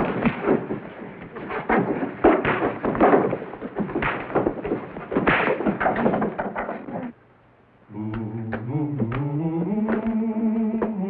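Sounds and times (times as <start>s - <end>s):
fistfight thuds and scuffling: 0.0s - 7.0s.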